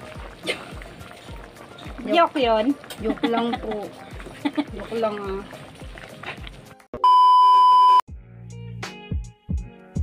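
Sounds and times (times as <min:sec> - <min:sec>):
electronic beep tone: 0:07.0 - 0:08.0.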